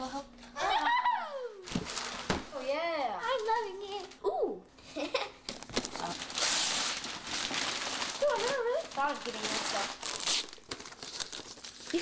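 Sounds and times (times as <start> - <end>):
wrapping paper tearing and crumpling: 1.6 - 4.3, 5.1 - 12.0.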